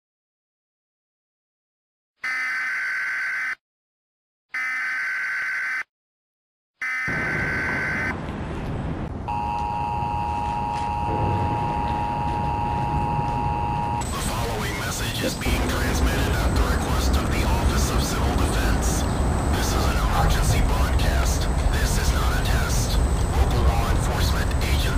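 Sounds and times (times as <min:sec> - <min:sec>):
long electronic beeps: 0:06.8 - 0:08.1, 0:09.3 - 0:24.9
steady electronic tone: 0:09.3 - 0:24.9
steady noisy rumble: 0:10.0 - 0:24.9.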